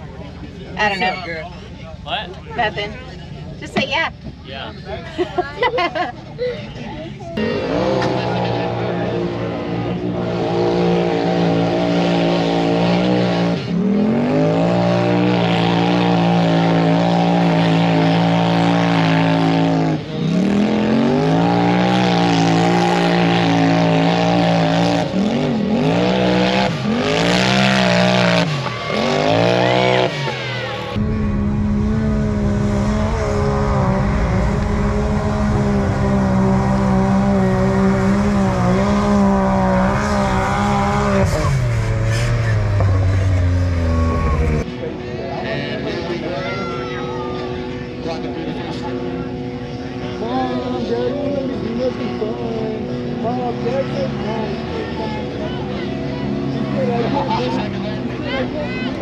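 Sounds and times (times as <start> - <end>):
off-road engine revving: 0.0 - 6.5, 7.2 - 59.0
low rumble: 30.9 - 44.7.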